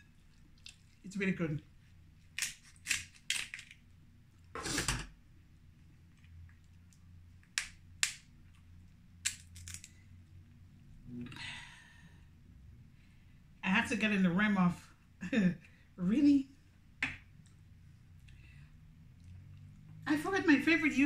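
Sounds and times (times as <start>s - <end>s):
crab shell cracking: 2.2s - 3.8s, 7.4s - 8.3s, 9.2s - 10.0s
shell scraping crunch: 9.2s - 10.0s.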